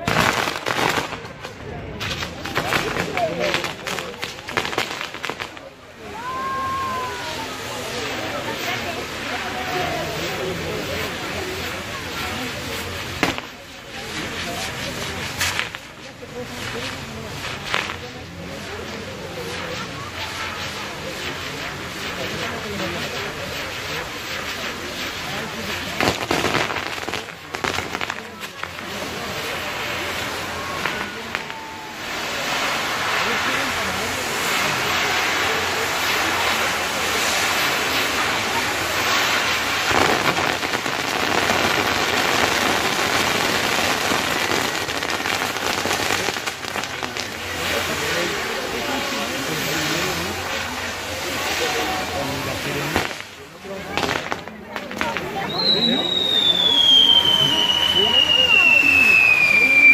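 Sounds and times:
crowd voices: 0:00.0 - 0:59.9
firework bangs: 0:00.0 - 0:59.9
firework fountains hissing and crackling: 0:00.0 - 0:59.9.

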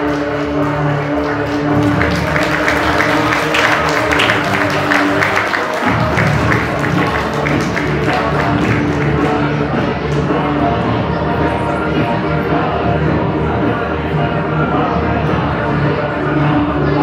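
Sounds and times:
song with long held note: 0:00.0 - 0:17.0.

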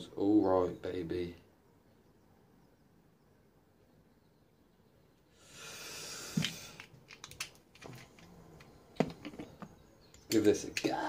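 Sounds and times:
short hiss: 0:05.4 - 0:06.8
small clicks and taps: 0:06.4 - 0:10.9.

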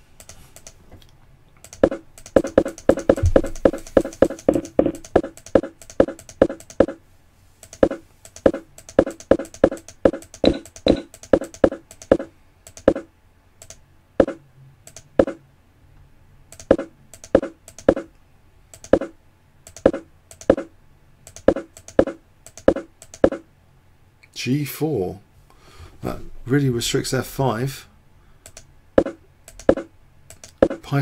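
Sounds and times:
computer mouse clicking: 0:00.2 - 0:07.0, 0:07.6 - 0:15.4, 0:16.5 - 0:23.4, 0:28.4 - 0:30.8.

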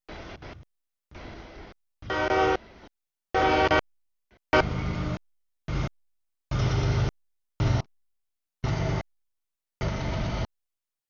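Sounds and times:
low rumble of passing train: 0:00.1 - 0:03.8, 0:04.5 - 0:05.9, 0:06.5 - 0:07.8, 0:08.6 - 0:09.0, 0:09.8 - 0:10.5
locomotive air horn: 0:02.0 - 0:03.9, 0:04.5 - 0:05.1.

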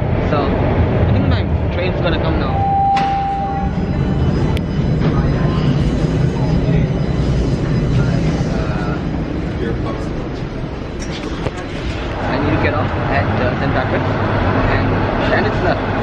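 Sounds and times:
passengers' voices: 0:00.0 - 0:16.0
subway train rumble: 0:00.0 - 0:16.0.

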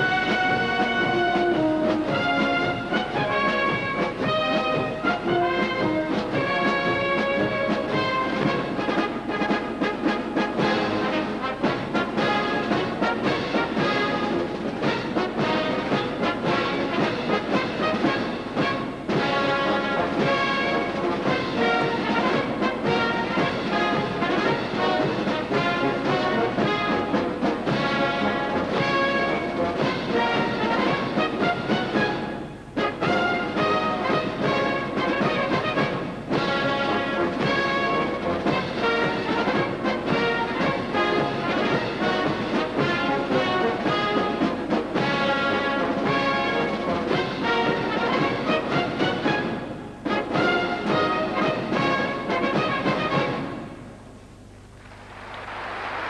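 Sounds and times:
military brass band playing: 0:00.0 - 0:56.0.

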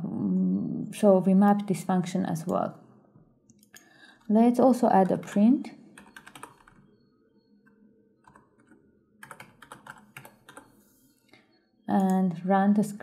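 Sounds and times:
computer keyboard typing: 0:04.8 - 0:06.8, 0:07.6 - 0:10.8.

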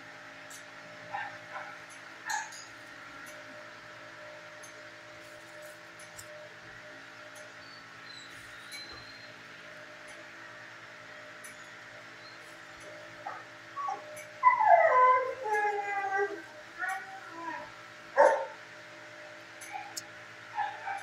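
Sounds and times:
dog whining and whimpering: 0:13.3 - 0:18.6, 0:19.7 - 0:20.0
dog yip: 0:18.2 - 0:18.6, 0:20.6 - 0:21.0.

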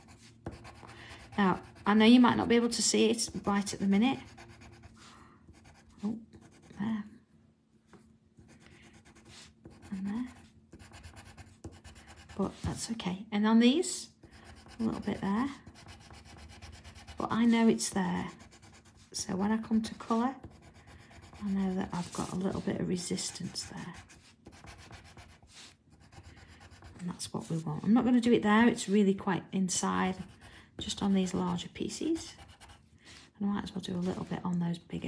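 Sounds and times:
pencil scratching on paper: 0:00.0 - 0:02.4, 0:03.3 - 0:06.8, 0:08.5 - 0:12.8, 0:14.3 - 0:27.6, 0:30.0 - 0:32.8.

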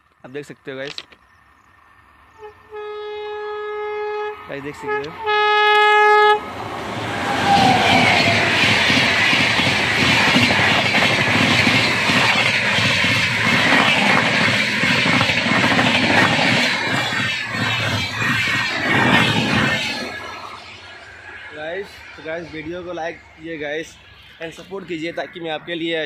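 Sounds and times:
wheels clicking over rail joints: 0:00.0 - 0:01.7
locomotive horn: 0:02.3 - 0:06.5
train wheels rumbling on rail: 0:04.4 - 0:26.0.

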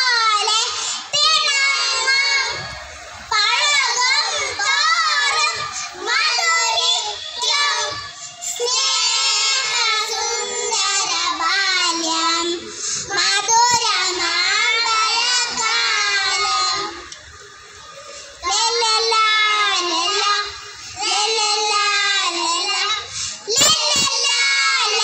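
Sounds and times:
children singing into microphones: 0:00.0 - 0:25.0.

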